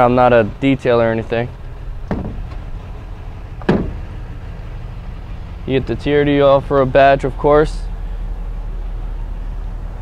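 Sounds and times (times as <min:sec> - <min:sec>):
steady low rumble: 0:00.0 - 0:10.0
fuel filler door clicking shut: 0:02.0 - 0:02.8, 0:03.5 - 0:04.3.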